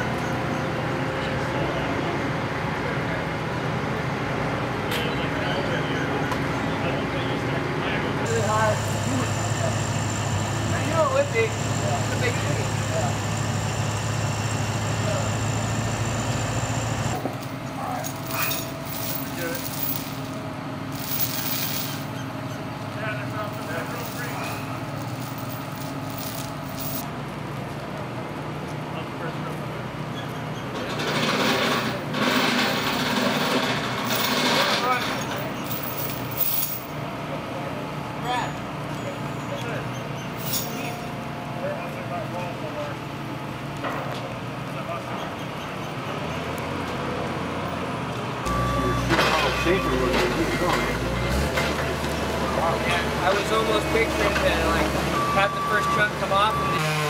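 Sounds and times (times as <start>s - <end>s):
diesel engine running: 0.0s - 30.1s, 41.1s - 57.0s
distant crew voices: 0.0s - 57.0s.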